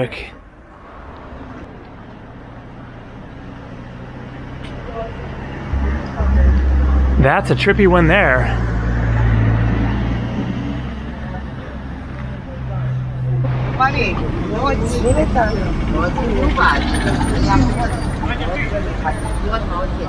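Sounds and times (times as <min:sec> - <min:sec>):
traffic noise: 0:00.0 - 0:20.0
vehicle engine humming: 0:00.0 - 0:20.0
passers-by talking: 0:01.6 - 0:20.0.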